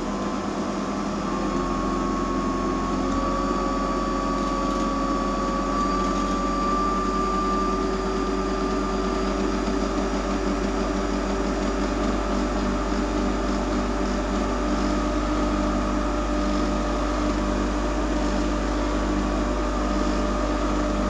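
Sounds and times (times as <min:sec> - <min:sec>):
pumps humming: 0:00.0 - 0:21.0.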